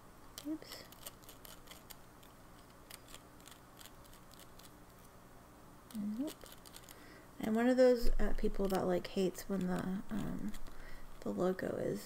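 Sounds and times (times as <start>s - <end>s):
pen ticking and scratching on paper: 0.4s - 2.0s, 2.6s - 4.7s, 6.2s - 7.6s, 8.3s - 11.3s.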